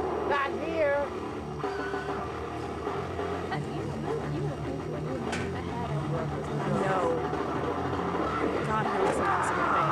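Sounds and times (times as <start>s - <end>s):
indistinct voices talking: 0.0s - 9.9s.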